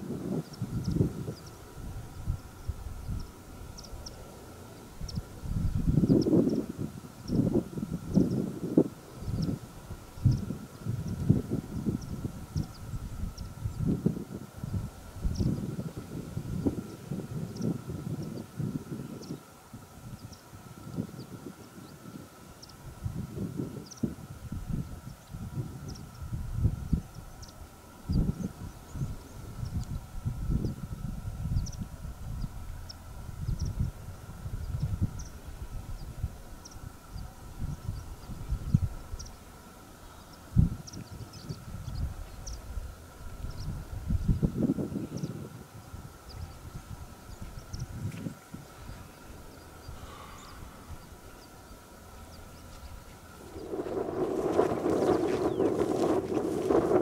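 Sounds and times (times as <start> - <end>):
wind buffeting microphone: 0.0 - 39.7, 40.4 - 57.0.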